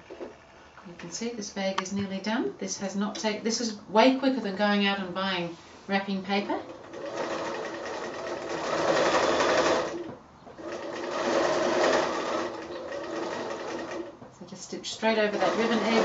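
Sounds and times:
sewing machine stitching: 0:06.7 - 0:14.1, 0:15.2 - 0:16.0.

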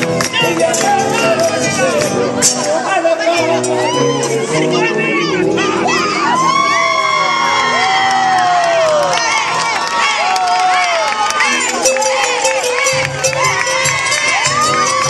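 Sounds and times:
dance music: 0:00.0 - 0:15.0
audience cheering and whooping: 0:05.2 - 0:15.0.

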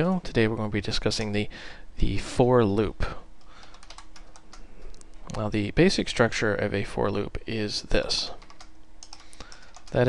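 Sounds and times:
computer keyboard typing: 0:03.5 - 0:04.6, 0:08.3 - 0:10.0.

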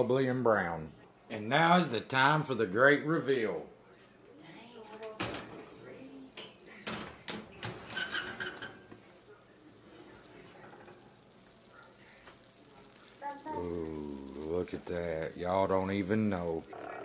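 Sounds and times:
oven door squeak: 0:07.5 - 0:08.8.

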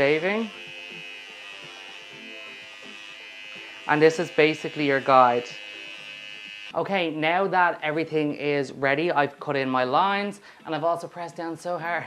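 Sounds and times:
electric hair trimmer buzzing: 0:00.0 - 0:06.8.

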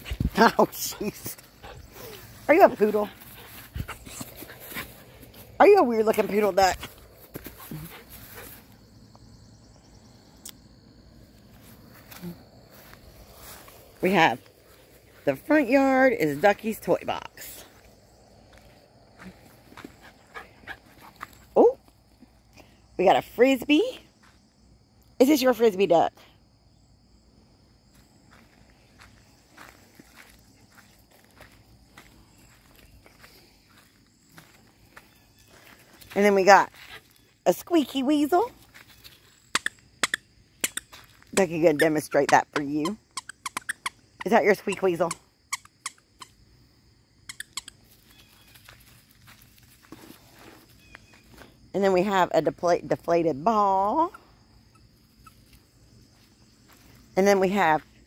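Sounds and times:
footsteps on dry straw: 0:12.7 - 0:15.2, 0:48.1 - 0:51.4.

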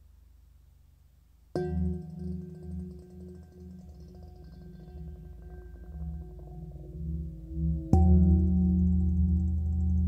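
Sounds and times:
faint low drone: 0:01.6 - 0:10.0.

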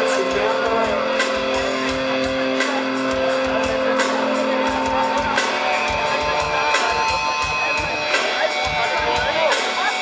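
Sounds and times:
punk rock band playing: 0:00.0 - 0:10.0.

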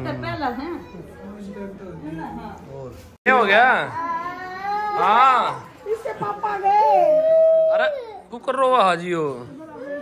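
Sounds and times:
boy crying: 0:03.9 - 0:05.5, 0:06.4 - 0:08.4.

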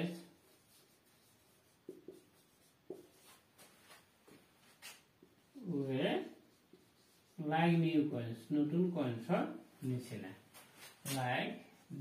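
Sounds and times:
marker squeaking on whiteboard: 0:00.5 - 0:03.5.

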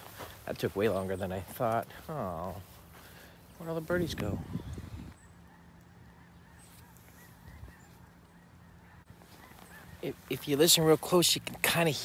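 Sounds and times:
distant geese honking: 0:05.1 - 0:11.2.

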